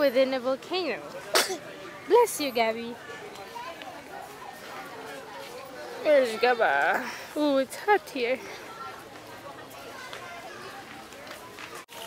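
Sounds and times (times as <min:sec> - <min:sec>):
faint background voices: 0:00.0 - 0:12.0
steady outdoor noise: 0:00.0 - 0:12.0.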